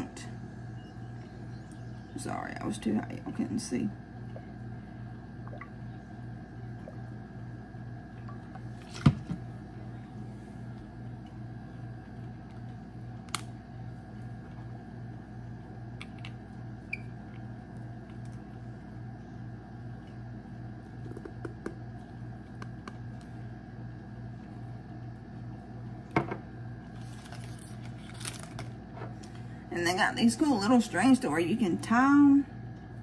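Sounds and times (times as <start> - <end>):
steady low room hum: 0.0 - 33.0
bottle knocking on countertop: 26.2 - 26.4.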